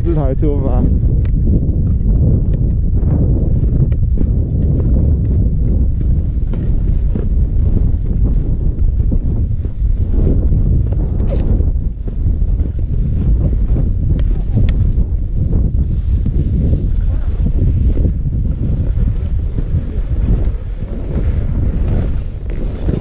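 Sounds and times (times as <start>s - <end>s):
skis and poles ticking on snow: 0.0s - 23.0s
wind buffeting microphone: 0.0s - 23.0s.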